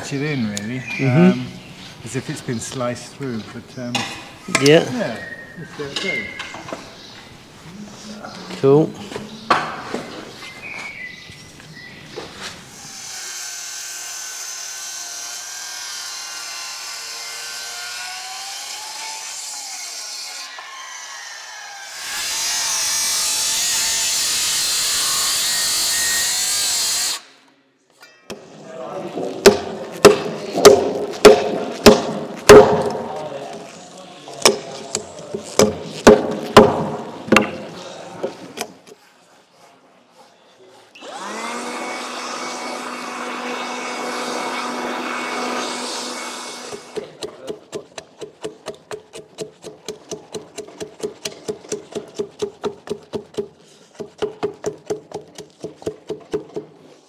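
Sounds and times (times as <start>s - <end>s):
circular saw cutting timber: 12.4s - 27.3s, 38.6s - 56.5s.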